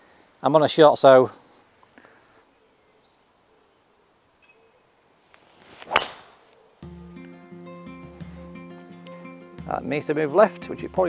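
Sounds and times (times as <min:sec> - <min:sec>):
golf club swish: 0:05.3 - 0:06.6
clubface cracking on ball: 0:05.6 - 0:06.5
background music: 0:06.8 - 0:11.0.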